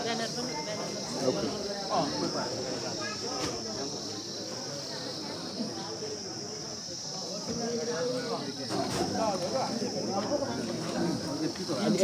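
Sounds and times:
high-pitched insect chirring: 0.0 - 5.9.

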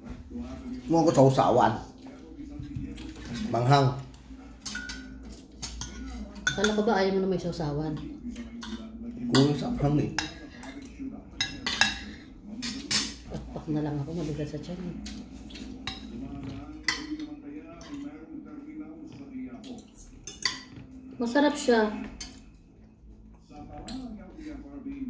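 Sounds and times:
cutlery clinking on plates: 4.6 - 6.9, 8.0 - 13.5, 15.1 - 18.2, 19.7 - 21.0.

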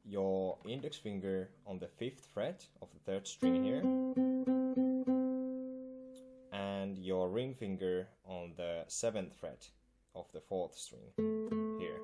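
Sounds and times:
nylon-string guitar plucking: 3.2 - 6.6, 11.1 - 12.0.

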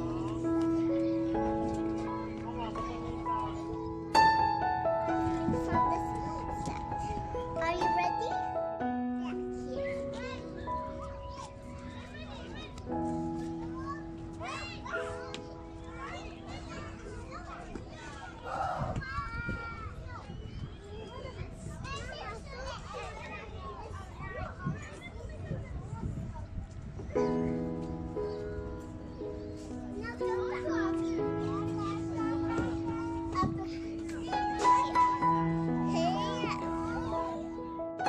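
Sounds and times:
children calling and squealing: 0.0 - 38.0.

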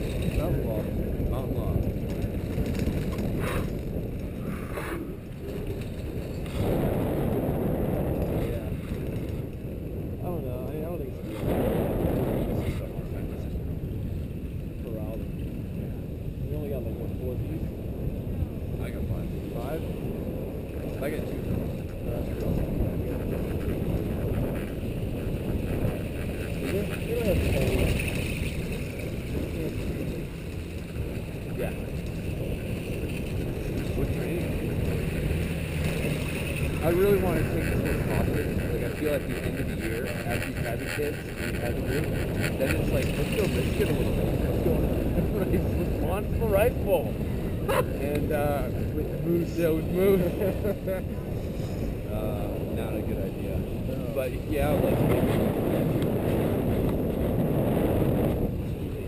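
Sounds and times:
wind buffeting camera: 0.0 - 59.0
muffled indistinct voices: 0.3 - 2.0, 18.5 - 30.4, 36.3 - 56.0.

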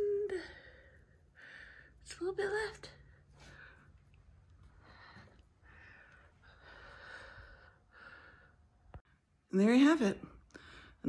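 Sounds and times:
soft breaths close to microphone: 0.2 - 9.3.

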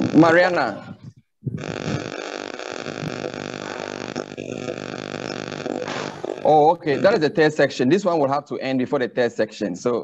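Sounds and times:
buzzing drone: 0.0 - 7.2.

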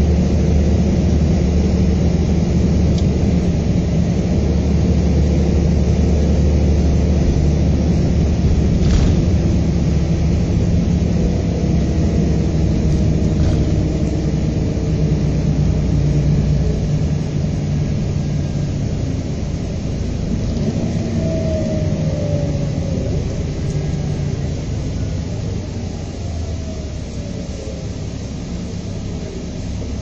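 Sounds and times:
diesel engine drone: 0.0 - 30.0
road noise: 0.0 - 30.0.

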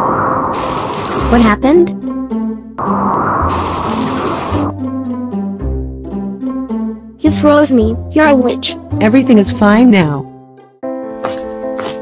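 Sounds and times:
rushing hiss: 0.5 - 1.3, 3.4 - 4.7
low rumble: 2.8 - 4.7.

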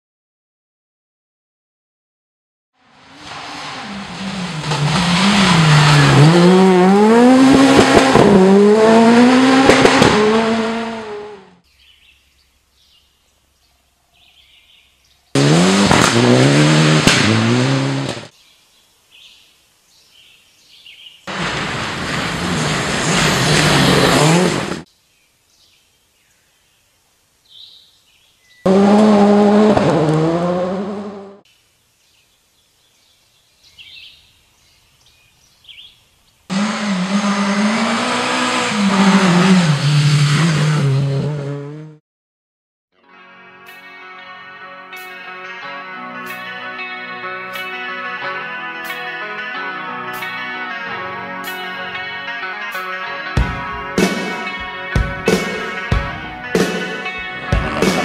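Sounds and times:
rally car engines revving: 2.9 - 11.6, 15.3 - 18.3, 21.3 - 24.9, 28.7 - 31.4, 36.5 - 42.0, 56.6 - 58.0.

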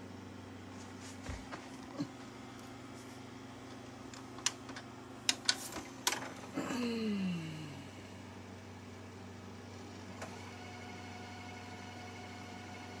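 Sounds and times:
tape deck motor whirring: 9.8 - 13.0.

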